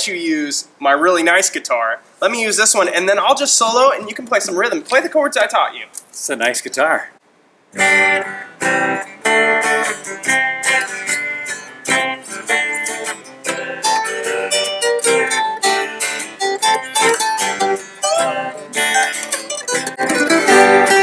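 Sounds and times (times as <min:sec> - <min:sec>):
picked acoustic guitar lead: 0:07.7 - 0:21.0
strummed guitar chords: 0:07.8 - 0:21.0.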